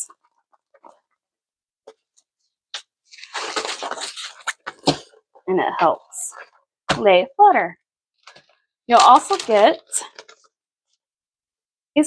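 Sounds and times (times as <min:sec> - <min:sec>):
plastic wrap crinkling: 0:02.7 - 0:05.1, 0:08.2 - 0:10.5.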